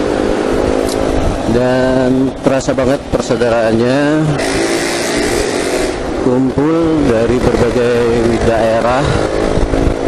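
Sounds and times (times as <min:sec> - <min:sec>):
low engine hum: 0:00.0 - 0:10.0
wind and road hiss: 0:00.0 - 0:10.0.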